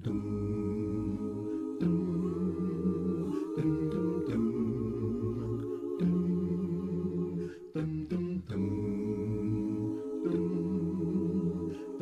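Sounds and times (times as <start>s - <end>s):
voices humming in harmony: 0.0s - 12.0s.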